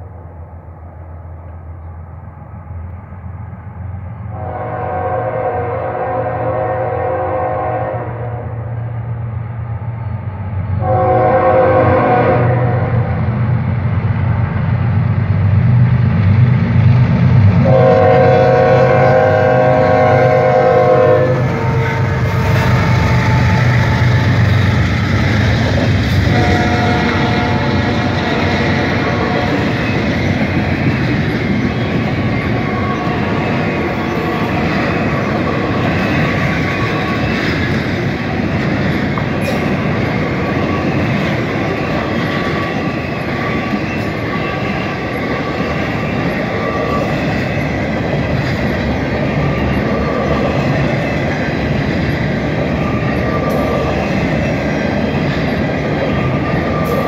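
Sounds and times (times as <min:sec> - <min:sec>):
locomotive air horn: 0:04.3 - 0:08.8, 0:10.8 - 0:13.2, 0:17.6 - 0:24.6, 0:26.2 - 0:29.8, 0:32.4 - 0:37.3
train wheels clattering on rail: 0:13.1 - 0:57.0.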